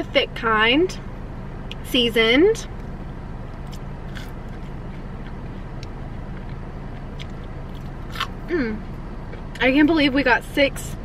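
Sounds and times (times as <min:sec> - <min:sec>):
car engine idling: 0:00.0 - 0:11.0
chewing french fries: 0:03.6 - 0:08.5.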